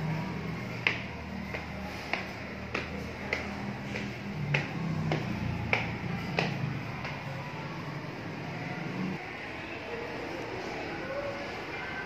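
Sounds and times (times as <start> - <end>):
shoe clicks on tiled stairs: 0.6 - 7.5.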